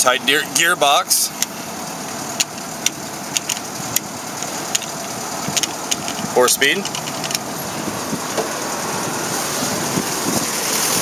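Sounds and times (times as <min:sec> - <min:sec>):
jeep engine running: 0:00.0 - 0:11.0
sharp clicks and rattles: 0:01.4 - 0:08.6.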